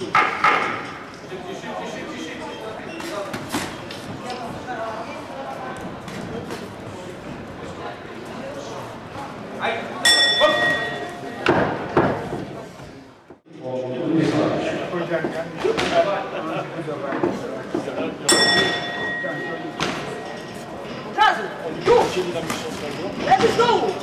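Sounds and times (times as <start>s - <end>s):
boxing ring bell: 10.0s - 11.4s, 18.3s - 20.8s.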